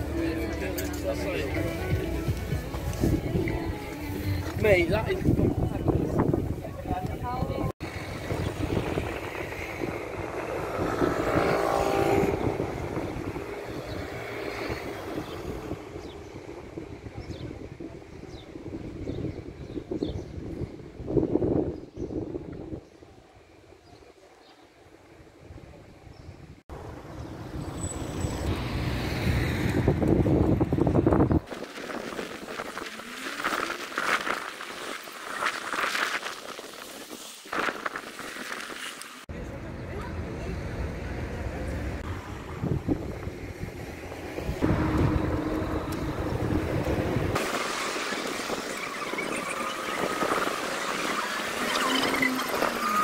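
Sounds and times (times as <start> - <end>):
cars passing: 7.8 - 17.2, 26.7 - 32.2, 39.0 - 53.0.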